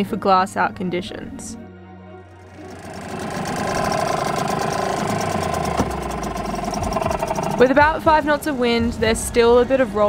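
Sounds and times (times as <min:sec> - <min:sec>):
small outboard motor running: 0:02.3 - 0:08.2.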